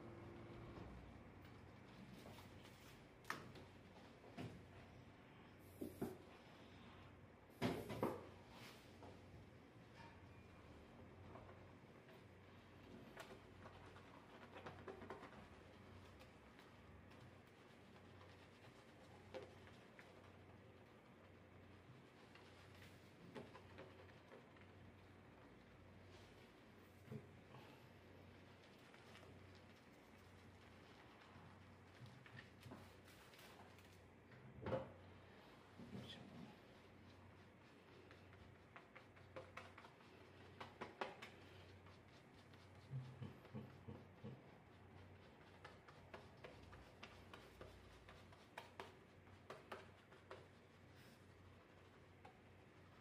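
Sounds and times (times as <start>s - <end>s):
low steady hum: 0.0s - 53.0s.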